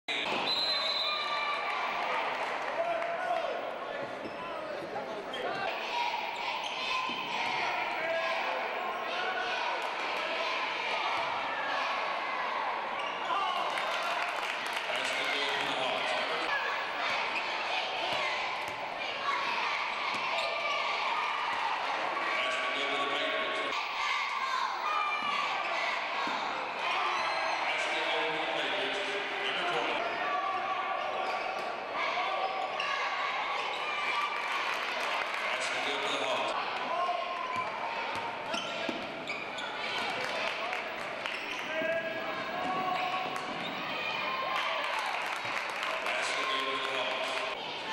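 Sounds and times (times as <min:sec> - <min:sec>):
crowd voices echoing in gym: 0:00.1 - 0:47.9.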